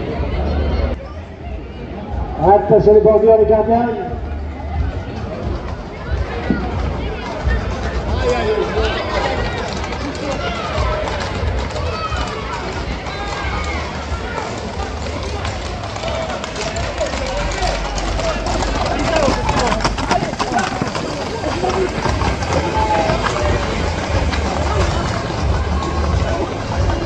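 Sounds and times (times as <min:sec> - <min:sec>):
crowd voices and shouts: 0:00.0 - 0:27.0
horse hooves clattering on asphalt: 0:04.2 - 0:27.0.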